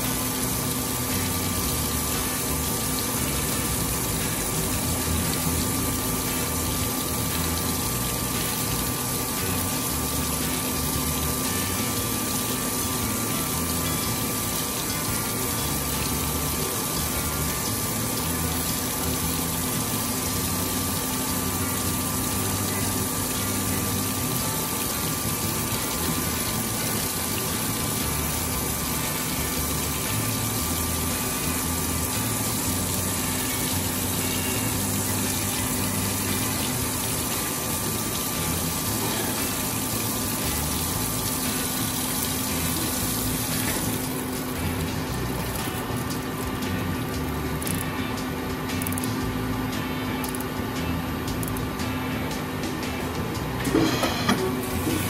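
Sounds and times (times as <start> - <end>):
coolant splashing: 0.0 - 55.0
machine hum: 0.0 - 55.0.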